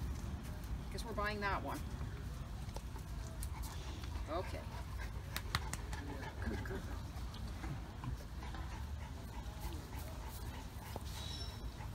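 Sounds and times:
faint dog sounds: 2.6s - 11.9s.

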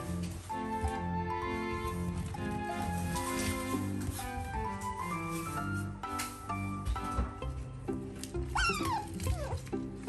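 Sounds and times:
background music: 0.0s - 10.0s
pet animal high call: 8.6s - 9.6s.

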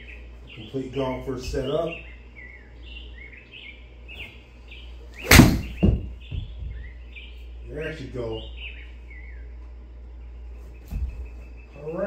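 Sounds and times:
bird-like chirps: 0.0s - 12.0s
golf club striking ball: 5.2s - 6.1s
dull thump: 5.2s - 6.8s.

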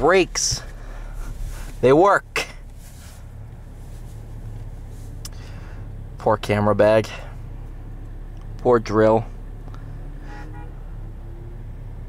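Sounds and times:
diesel truck engine drone: 0.0s - 12.0s.

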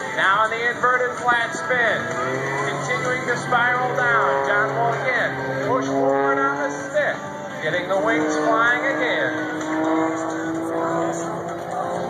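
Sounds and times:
propeller airplane engine droning: 0.0s - 12.0s.

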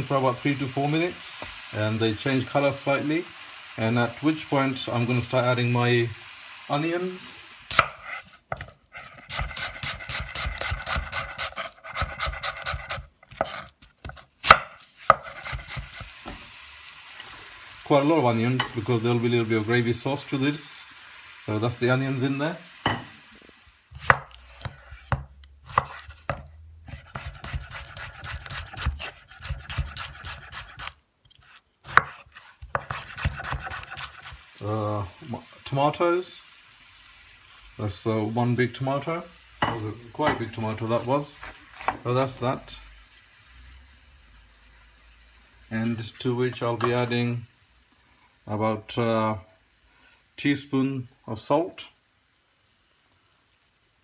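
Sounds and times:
food sizzling in a pan: 0.0s - 13.8s, 14.4s - 54.0s
knife slicing tomato on board: 7.7s - 16.1s, 23.9s - 34.4s, 41.4s - 42.0s.

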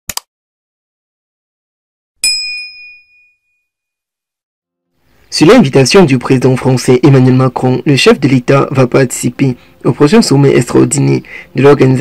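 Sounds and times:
notification bell ding: 2.2s - 3.7s.

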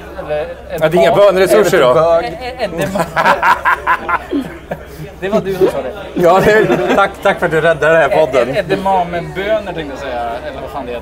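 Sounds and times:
man laughing: 2.8s - 5.0s.

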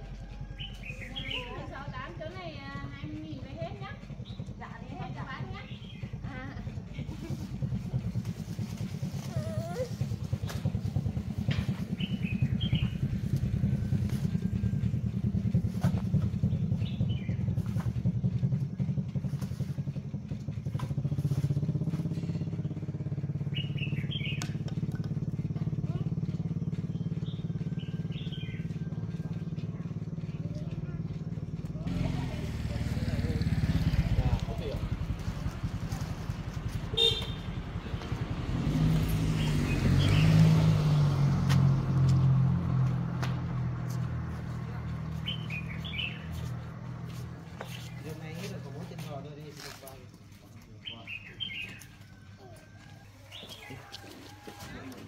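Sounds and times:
small motorcycle engine running: 0.0s - 55.0s
bird chirps: 11.9s - 13.1s, 23.4s - 24.7s, 45.1s - 46.6s, 50.8s - 52.5s.

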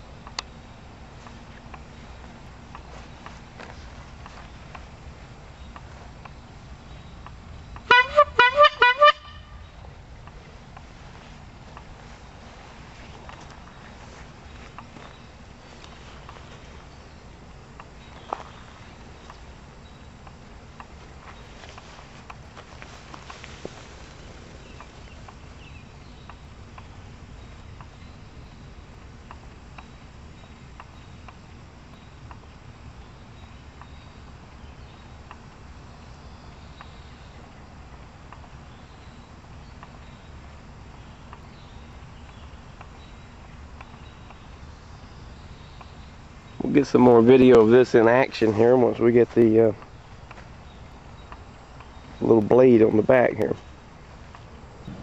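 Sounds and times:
faint outdoor background: 0.0s - 55.0s
bulb horn honking: 7.8s - 9.8s.

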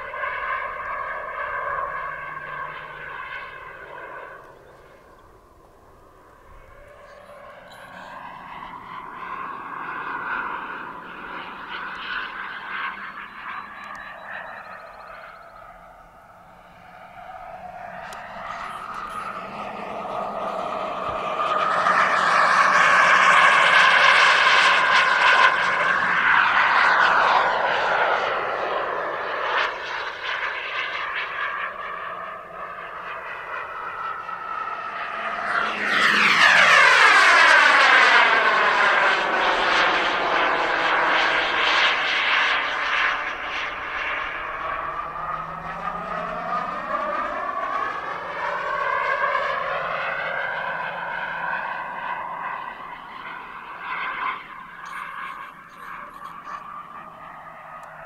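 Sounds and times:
model jet turbine whine flying past: 0.0s - 58.0s.

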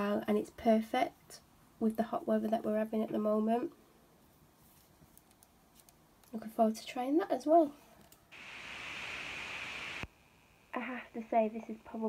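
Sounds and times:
steady hiss: 8.4s - 12.0s.

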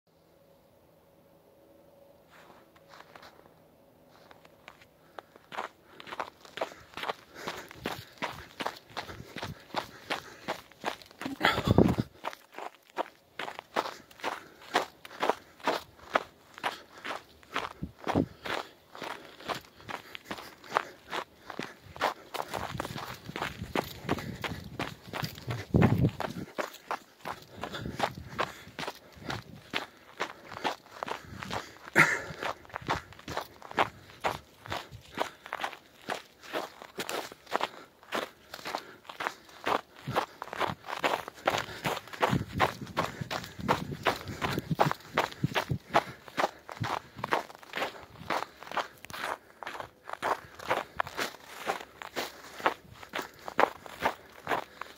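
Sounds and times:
footsteps crunching on snow: 2.3s - 54.9s.

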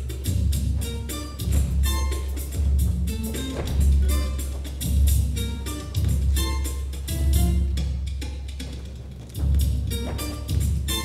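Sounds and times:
heavy low drum beat: 0.0s - 8.7s
instrumental music with drums: 0.0s - 11.0s.

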